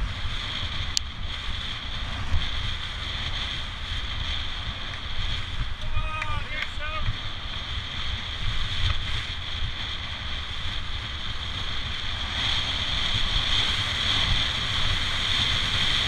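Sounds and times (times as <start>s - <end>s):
tyres rumbling on tarmac: 0.0s - 16.0s
wind rushing over microphone: 0.0s - 16.0s.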